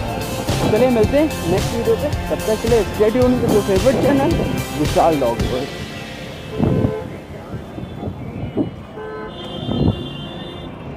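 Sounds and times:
road traffic: 0.0 - 10.9
vehicle horn: 6.3 - 10.9.

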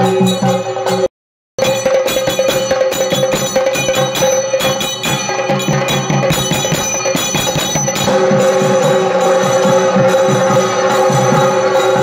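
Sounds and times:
low drum beats: 0.0 - 12.0
metal handbell ringing rapidly: 1.6 - 12.0.

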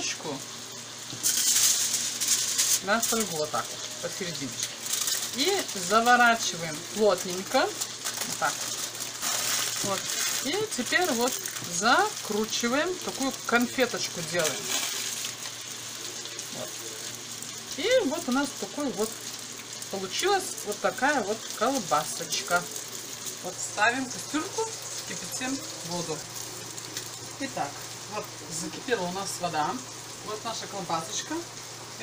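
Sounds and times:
frying pan sizzling: 0.0 - 32.0
aluminium foil crinkling: 1.1 - 27.4.

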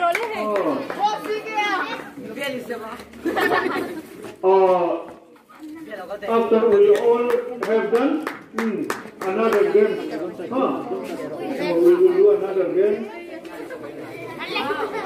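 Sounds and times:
children chattering and calling out: 0.0 - 6.7, 9.3 - 15.0.

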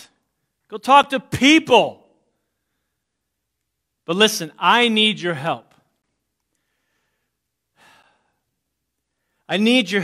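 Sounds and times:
faint man's breath: 6.5 - 8.5.

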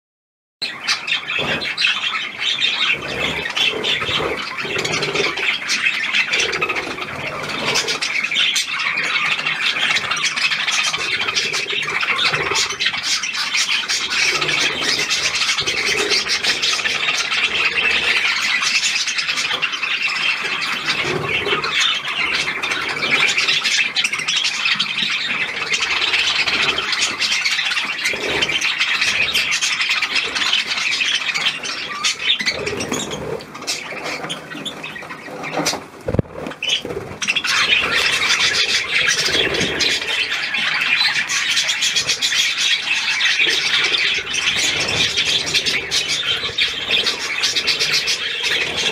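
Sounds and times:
budgerigars chattering and squawking: 0.6 - 48.9.

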